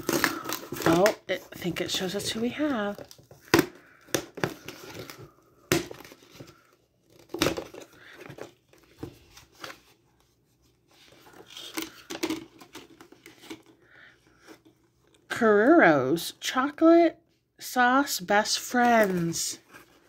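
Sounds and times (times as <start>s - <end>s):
paper and plastic tearing: 0.0s - 1.2s.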